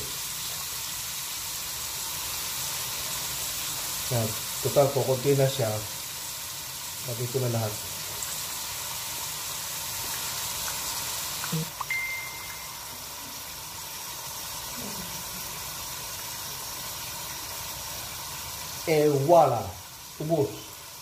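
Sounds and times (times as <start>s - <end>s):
meat sizzling in a hot pot: 0.0s - 21.0s.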